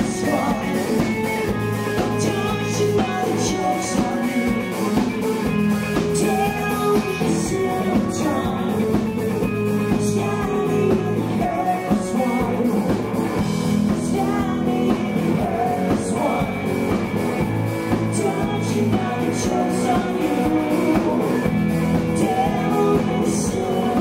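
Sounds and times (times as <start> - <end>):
woman singing lead: 0.0 - 16.8, 17.9 - 24.0
drum kit with cymbal crashes: 0.0 - 24.0
electric guitar: 0.0 - 24.0.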